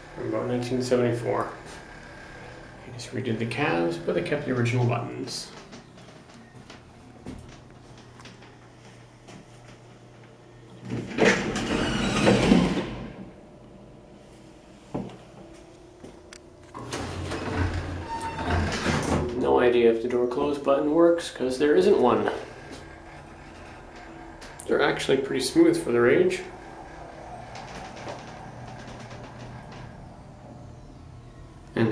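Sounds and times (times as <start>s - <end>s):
elevator hum: 0.0s - 31.9s
elevator doors sliding open rattling: 11.0s - 13.4s, 16.8s - 19.7s, 21.6s - 31.9s.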